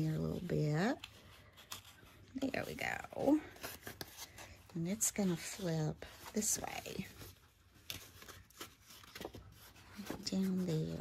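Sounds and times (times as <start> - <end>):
cardstock rustling being folded: 0.0 - 11.0
small paper crackles: 0.8 - 11.0.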